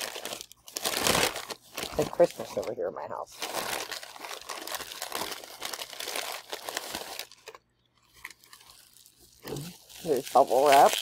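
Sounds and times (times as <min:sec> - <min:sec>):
tissue paper crinkling: 0:00.0 - 0:11.0.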